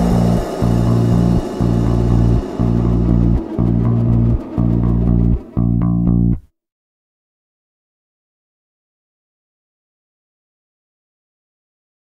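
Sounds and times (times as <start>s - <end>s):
rock band bass and guitar chords: 0.0s - 6.4s.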